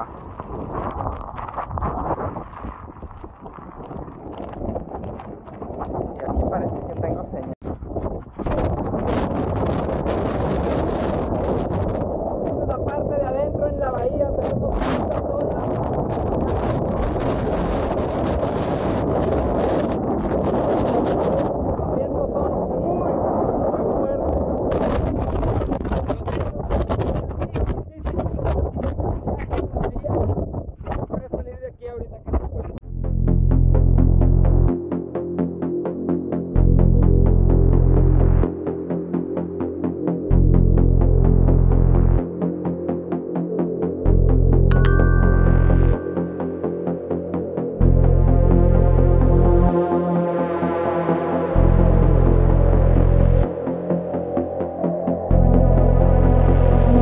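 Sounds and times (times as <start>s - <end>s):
strong wind buffeting microphone: 0.0s - 32.8s.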